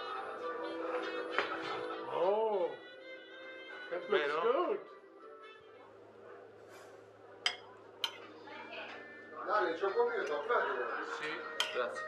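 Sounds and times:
cutlery clinking on plates: 0:07.4 - 0:08.4, 0:11.2 - 0:12.0.

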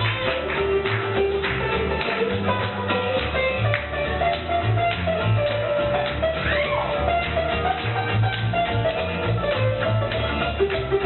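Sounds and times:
bass line: 0:00.0 - 0:11.0
percussion: 0:00.0 - 0:11.0
plucked guitar: 0:00.0 - 0:11.0.

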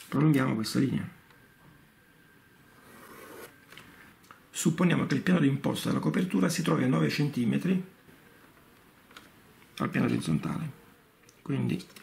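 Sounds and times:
pen drawing a line: 0:02.8 - 0:03.6.

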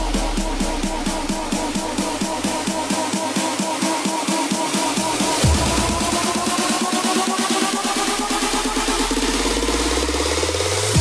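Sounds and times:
deep bass drone: 0:00.0 - 0:03.1, 0:04.9 - 0:06.7.

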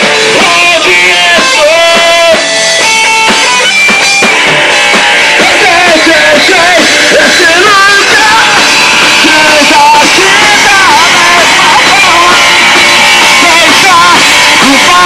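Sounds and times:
person singing: 0:00.0 - 0:02.6, 0:04.9 - 0:15.0
punk rock band playing live: 0:00.0 - 0:15.0.

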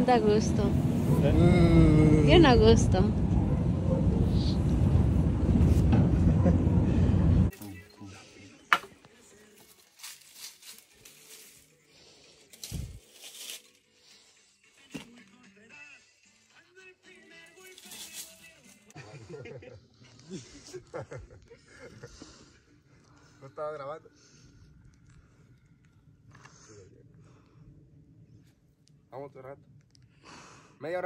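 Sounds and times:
vehicle rumbling over cobblestones: 0:00.0 - 0:07.5.

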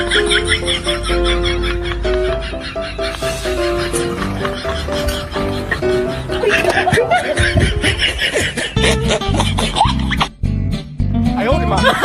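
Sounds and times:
snickering laughter: 0:00.0 - 0:10.3
background music: 0:00.0 - 0:12.0.

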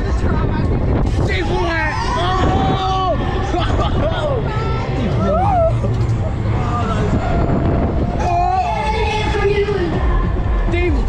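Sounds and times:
wind rushing across microphone: 0:00.0 - 0:11.0.

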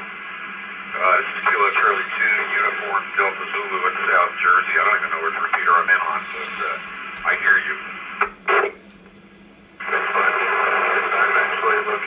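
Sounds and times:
radio static hiss: 0:00.0 - 0:09.1, 0:09.8 - 0:12.0
weak voice under static: 0:00.9 - 0:08.8, 0:09.8 - 0:12.0
distant voice over radio: 0:01.0 - 0:08.8, 0:09.8 - 0:12.0.

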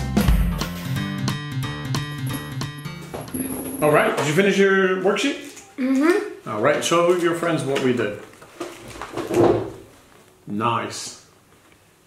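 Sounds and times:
paper rustling: 0:07.1 - 0:10.4.

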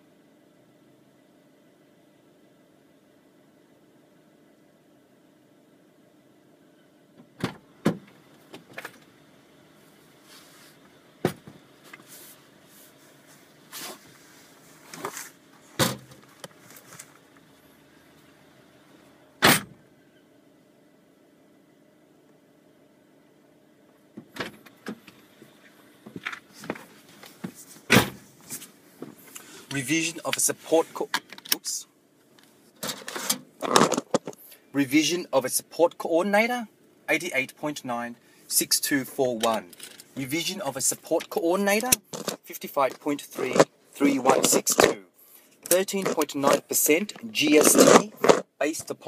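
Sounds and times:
faint vehicle cab hum: 0:00.0 - 0:49.0
knocks and clicks inside a vehicle: 0:11.2 - 0:11.6, 0:26.0 - 0:28.2.

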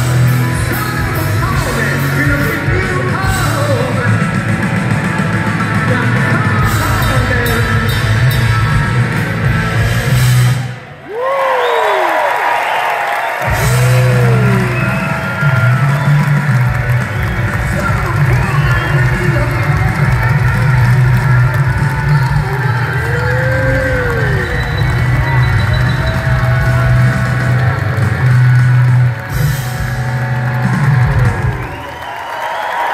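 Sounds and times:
live rock band playing: 0:00.0 - 0:10.9, 0:13.4 - 0:32.1
crowd cheering: 0:10.1 - 0:32.9.

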